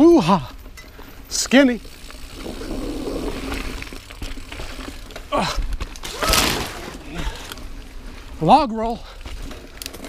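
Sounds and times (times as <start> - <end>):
bike frame and drivetrain rattle: 0.0 - 10.0
mountain bike tyre noise: 0.0 - 10.0
falling vocal cry: 5.3 - 7.3.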